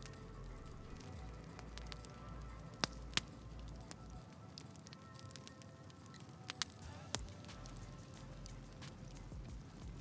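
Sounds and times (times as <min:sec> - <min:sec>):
faint background music: 0:00.0 - 0:10.0
sharp crackles: 0:00.0 - 0:10.0.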